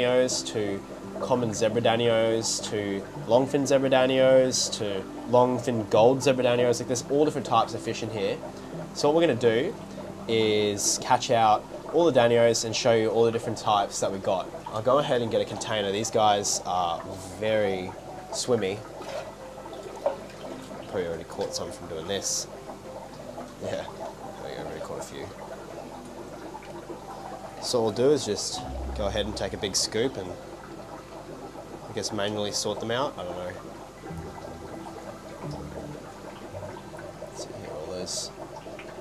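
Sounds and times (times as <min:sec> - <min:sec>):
aquarium water sloshing: 0:00.0 - 0:39.0
water splash: 0:18.8 - 0:21.6.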